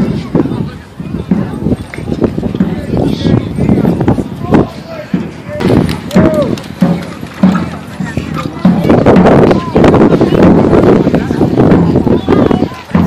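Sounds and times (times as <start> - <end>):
marching drum beating: 0.0 - 13.0
people talking: 0.0 - 13.0.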